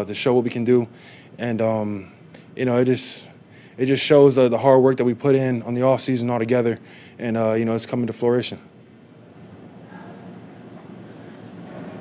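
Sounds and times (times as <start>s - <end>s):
low constant room hum: 0.0s - 12.0s.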